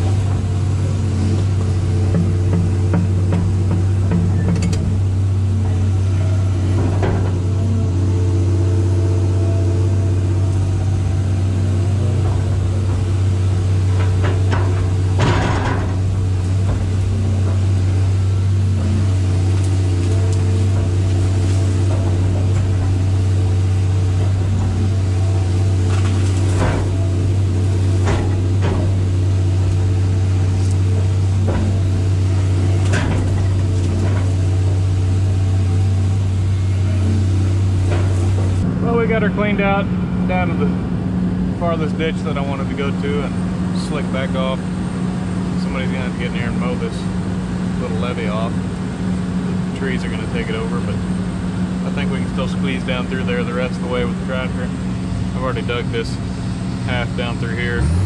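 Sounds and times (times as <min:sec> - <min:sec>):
excavator engine drone: 0:00.0 - 0:58.0
sharp knocks: 0:01.5 - 0:05.1.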